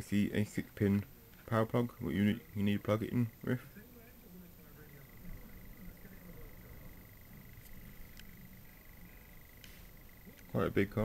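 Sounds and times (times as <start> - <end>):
high-pitched electrical whine: 0.0 - 11.0.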